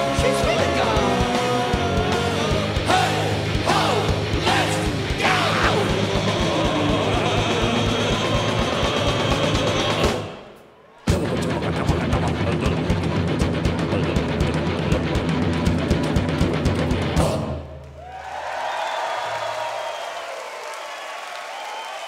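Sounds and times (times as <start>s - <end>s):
drum kit steady beat: 0.0s - 10.3s
electric guitars: 0.0s - 10.4s
bass: 0.0s - 18.2s.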